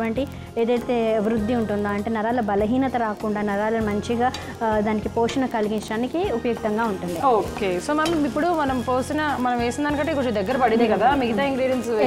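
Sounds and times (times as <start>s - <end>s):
light frying sizzle: 0.0s - 12.0s
woman talking: 0.1s - 12.0s.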